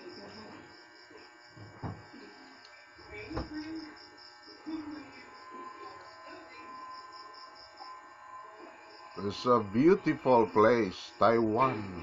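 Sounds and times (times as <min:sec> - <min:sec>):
high-pitched insect chirping: 0:03.0 - 0:12.0.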